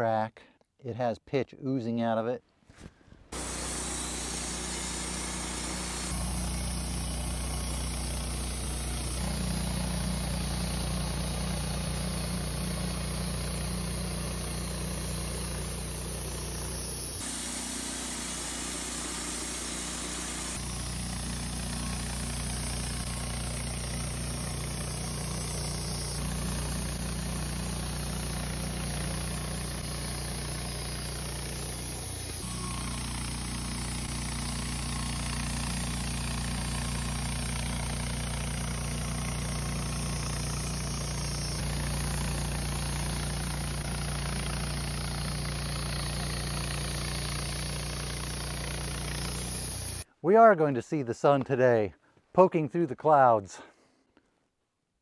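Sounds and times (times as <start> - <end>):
band sawmill cutting wood: 3.3 - 50.1.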